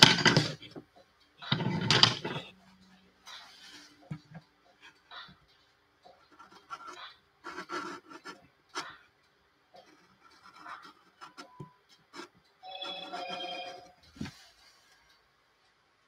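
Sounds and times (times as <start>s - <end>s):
pencil scratching on paper: 6.3s - 8.9s, 9.8s - 14.3s.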